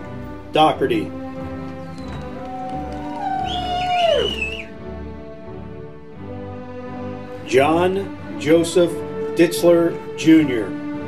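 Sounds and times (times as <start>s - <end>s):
background music: 0.0s - 11.0s
person cheering a held note: 2.2s - 4.7s.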